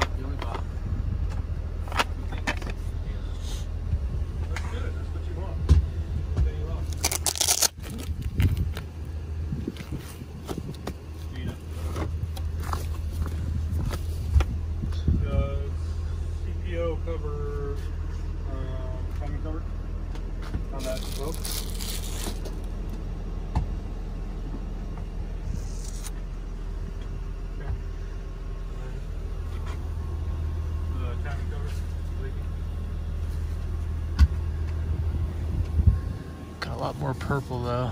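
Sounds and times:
truck engine humming: 0:00.0 - 0:37.9.

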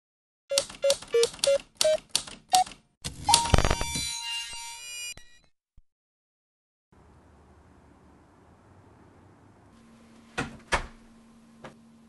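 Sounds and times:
typewriter-like keystrokes: 0:00.5 - 0:03.6.

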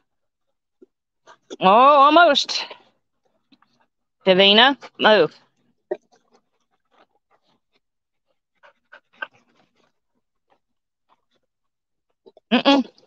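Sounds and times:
dogs panting: 0:01.2 - 0:11.7.

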